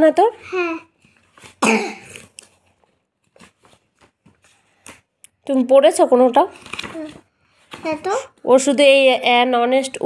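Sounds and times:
book page turning: 1.0 - 1.6, 2.2 - 5.0, 6.5 - 8.1.

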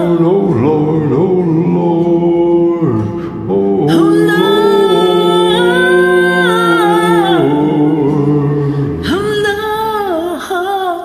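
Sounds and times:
duet voices singing held note: 0.0 - 10.2.

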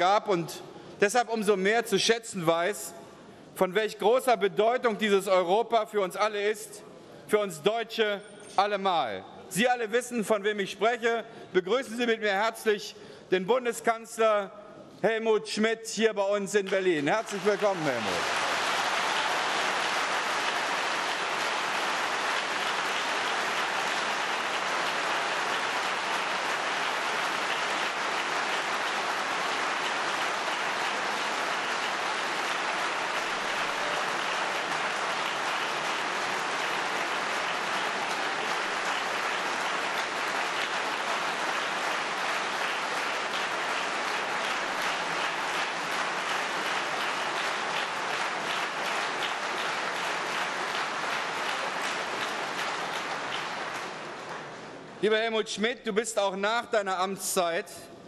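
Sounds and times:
audience applauding: 16.7 - 55.0.

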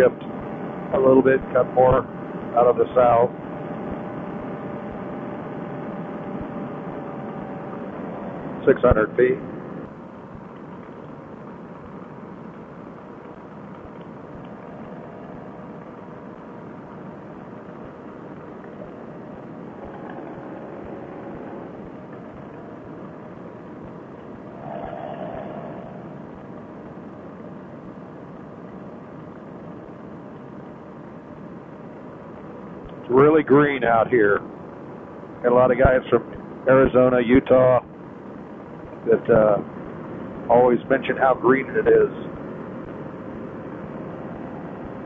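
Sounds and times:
engine and propeller running: 24.4 - 27.0.

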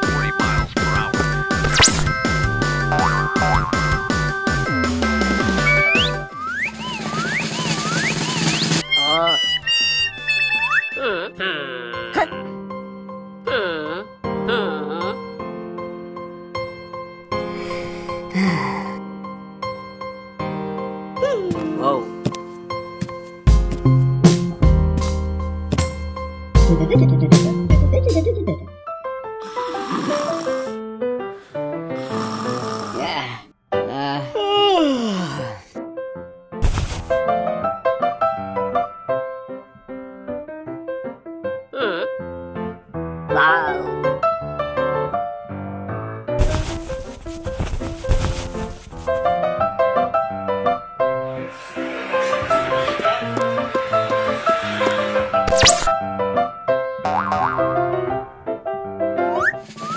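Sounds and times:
cartoon background music: 0.0 - 12.6, 13.4 - 15.5, 25.8 - 28.8, 43.3 - 44.2, 52.7 - 56.0, 57.1 - 58.0, 59.2 - 59.9
light musical tune: 4.5 - 11.4
falling whistle-like tone: 5.5 - 11.1, 51.3 - 56.0
cartoon snoring: 29.4 - 30.8, 32.0 - 33.4.

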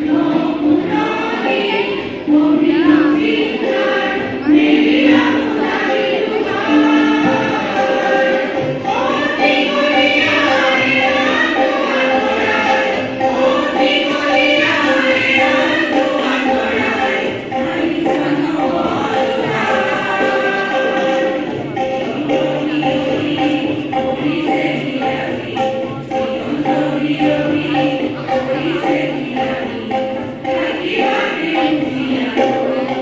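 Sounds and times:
choir singing held notes: 0.0 - 33.0.

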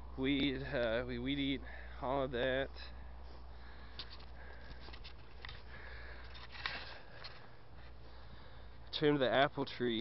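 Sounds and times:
steady low hum: 0.0 - 10.0
camera handling rustles and clicks: 3.9 - 8.0.

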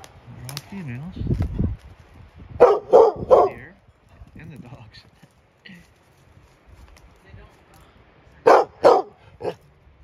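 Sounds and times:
dog barking: 2.6 - 3.6, 8.4 - 9.6.

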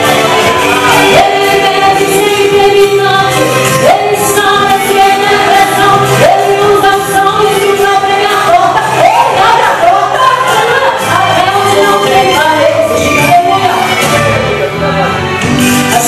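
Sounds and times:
amplified accompaniment: 0.0 - 16.0.

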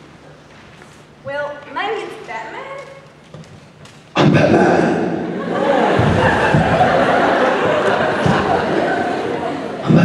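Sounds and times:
steady low hum: 3.2 - 10.0.

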